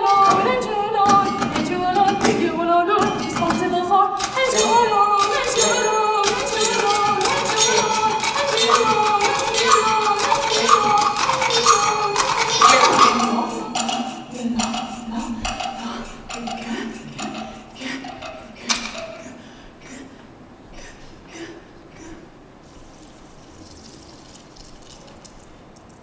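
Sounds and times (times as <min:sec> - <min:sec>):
woman singing: 0:00.0 - 0:19.4
sticks tapping wooden boxes: 0:03.0 - 0:19.3.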